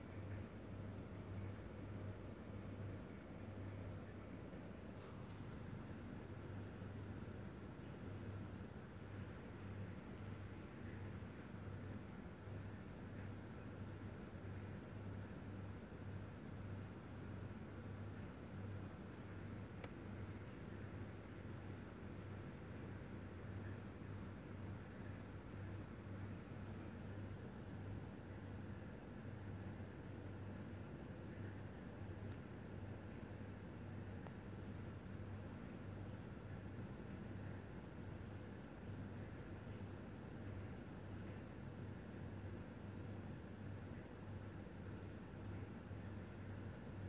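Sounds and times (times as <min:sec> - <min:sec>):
faint steady hiss: 0:00.0 - 0:47.0.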